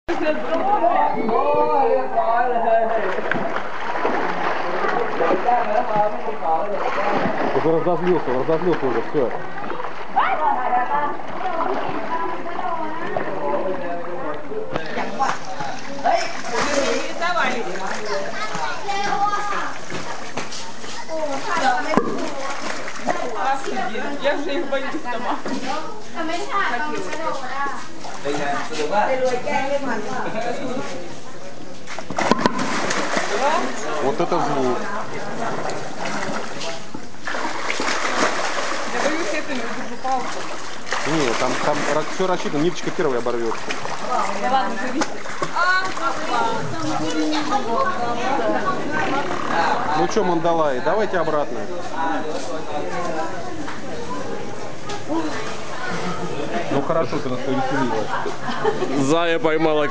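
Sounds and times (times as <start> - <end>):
water splashing: 2.8 - 24.4, 31.8 - 50.5
voices chattering: 37.9 - 59.9.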